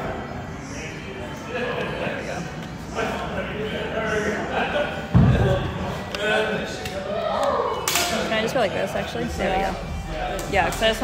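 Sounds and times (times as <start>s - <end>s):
people talking indistinctly: 0.6s - 11.0s.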